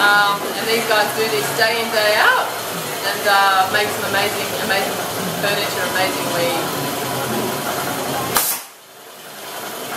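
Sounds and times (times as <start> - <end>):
workshop background noise: 0.0 - 9.9.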